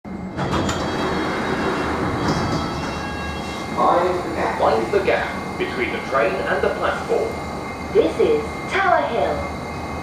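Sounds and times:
train equipment humming: 0.1s - 10.0s
train doors sliding open: 0.2s - 5.1s.

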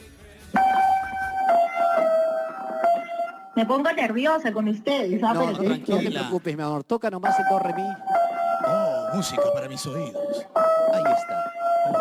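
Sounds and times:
piano notes ringing: 0.6s - 3.8s, 7.2s - 12.0s.

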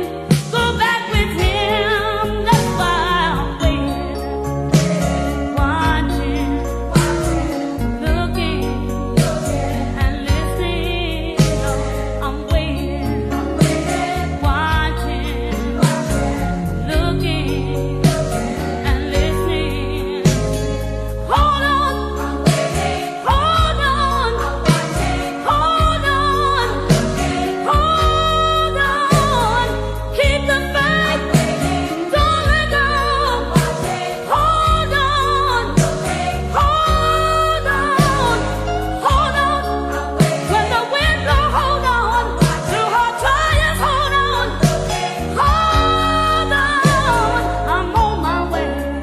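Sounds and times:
person singing gospel: 0.0s - 4.2s, 21.2s - 49.0s
bass line: 0.0s - 49.0s.

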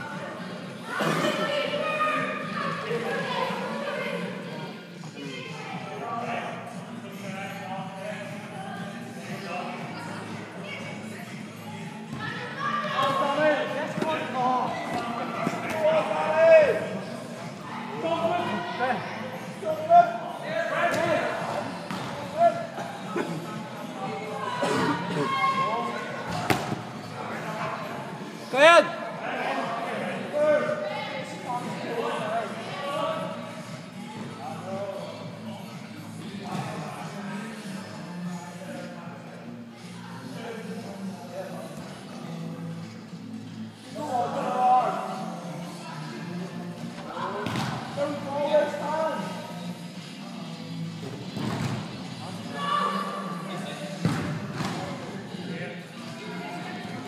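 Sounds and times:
players shouting in echoing hall: 0.9s - 4.4s, 24.4s - 26.6s, 52.4s - 54.0s.

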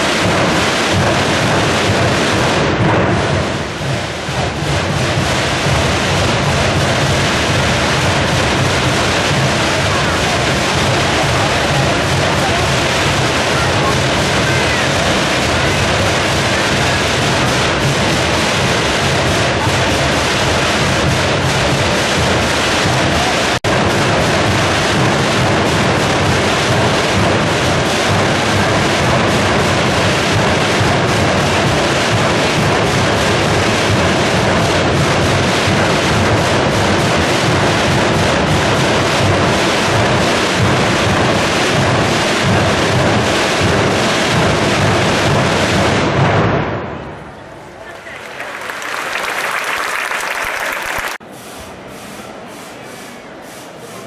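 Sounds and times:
massed drums rolling: 0.0s - 52.5s.

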